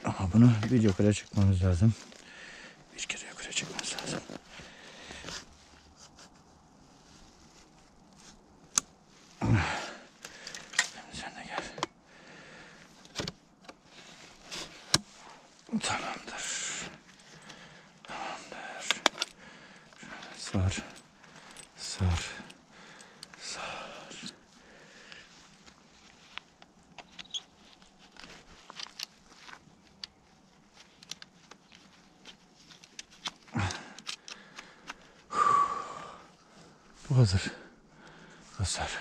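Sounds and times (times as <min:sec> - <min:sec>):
metal detector parts clicking: 0:10.2 - 0:11.0, 0:11.6 - 0:12.0, 0:18.7 - 0:23.4, 0:25.7 - 0:35.1.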